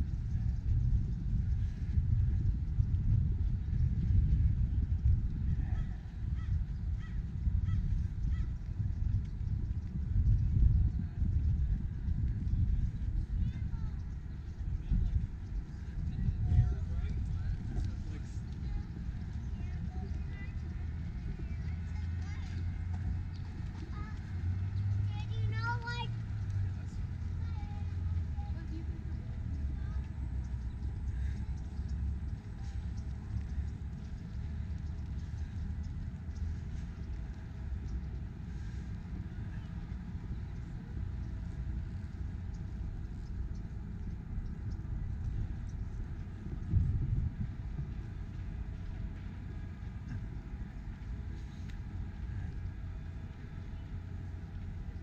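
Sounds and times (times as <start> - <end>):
traffic rumble: 0.0 - 55.0.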